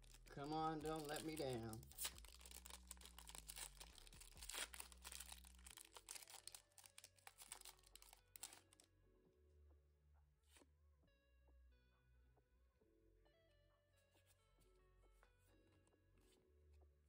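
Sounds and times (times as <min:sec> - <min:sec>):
foil wrapper tearing and crinkling: 0:00.0 - 0:08.8.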